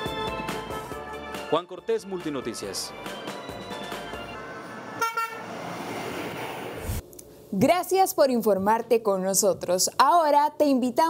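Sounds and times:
vehicle horn toot: 4.9 - 5.5
steady rushing noise: 5.6 - 7.0.

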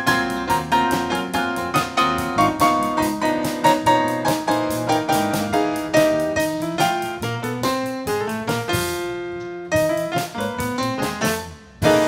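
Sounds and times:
piano playing: 0.0 - 12.0.

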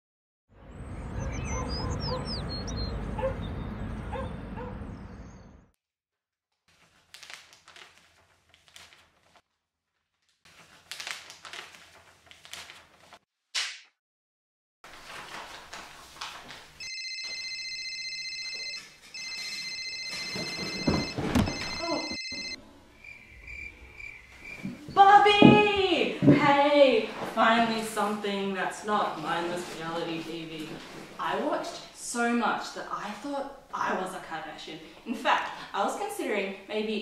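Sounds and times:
small birds chirping: 0.7 - 5.6, 22.9 - 25.0
telephone ringing: 16.8 - 22.6
shuffling: 24.3 - 31.6.

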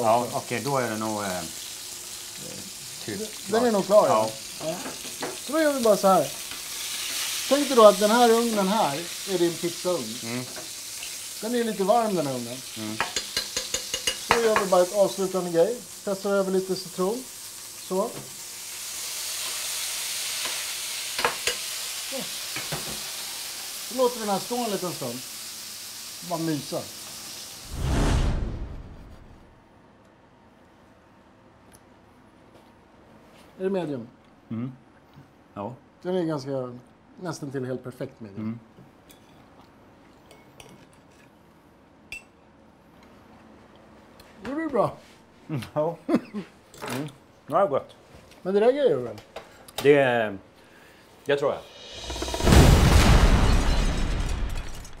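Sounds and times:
fat sizzling in a frying pan: 0.0 - 28.0
explosion-like boom of flame: 27.6 - 29.5, 51.8 - 55.0
deep whoosh: 27.7 - 29.5.

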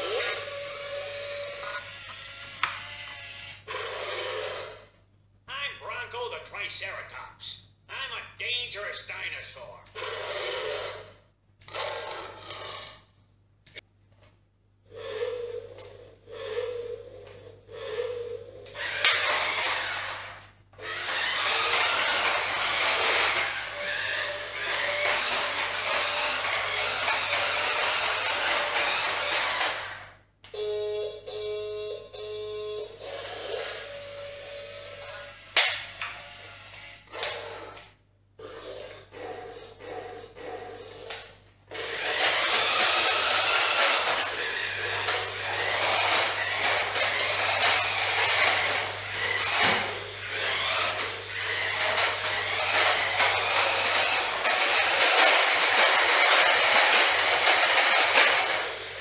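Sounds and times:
toy car motor rush: 0.0 - 4.9, 17.8 - 30.2, 33.0 - 38.0, 41.0 - 59.0
toy electronic voice phrases: 5.5 - 10.0.

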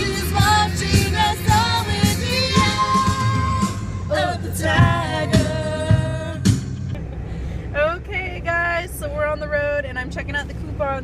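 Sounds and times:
car cabin rumble: 0.0 - 11.0
woman talking: 7.8 - 11.0.

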